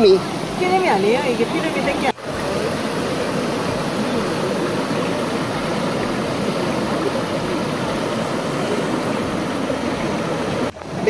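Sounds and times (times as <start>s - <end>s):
stream running over rocks: 0.0s - 11.0s.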